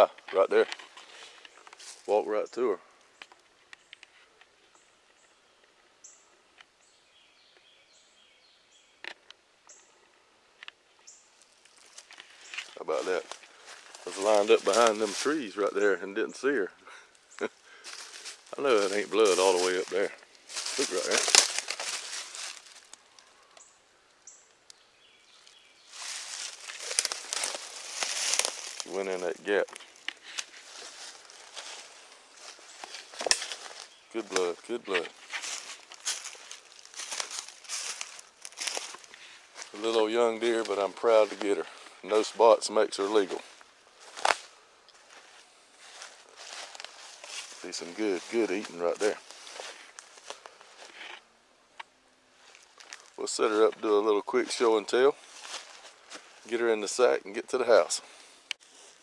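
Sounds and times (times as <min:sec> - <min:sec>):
footsteps crunching dry leaves: 0:00.4 - 0:02.3, 0:11.4 - 0:15.8, 0:17.4 - 0:23.6, 0:25.0 - 0:51.2, 0:52.4 - 0:57.0, 0:58.2 - 0:59.0
small bird chirping: 0:22.0 - 0:27.9.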